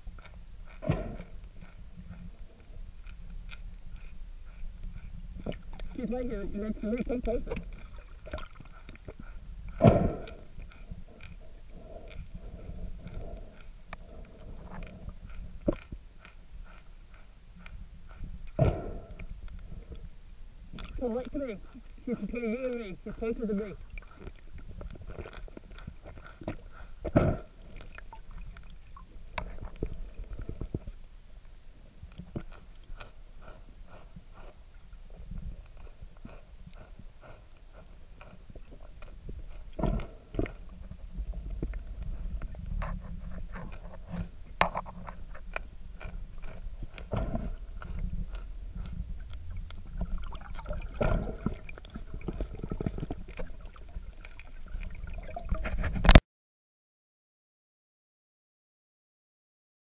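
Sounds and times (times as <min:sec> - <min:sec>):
underwater knocks and gurgles: 0:00.0 - 0:31.1, 0:32.0 - 0:56.2
low underwater rumble: 0:00.0 - 0:56.2
crunching clicks of feeding: 0:42.8 - 0:49.5.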